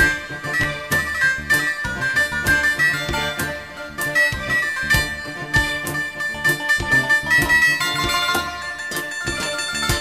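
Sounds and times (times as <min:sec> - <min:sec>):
electronic drum beat: 0:00.0 - 0:10.0.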